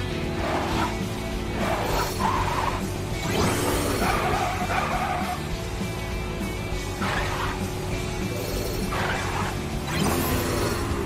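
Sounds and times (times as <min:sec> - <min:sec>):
video game background music: 0:00.0 - 0:11.0.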